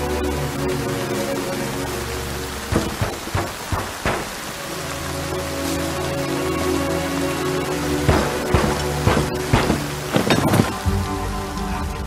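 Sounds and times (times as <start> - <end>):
low music drone: 0.0 - 3.4, 4.0 - 12.0
steady rain: 0.0 - 12.0
heavy sharp thuds: 2.7 - 4.6, 8.1 - 10.6.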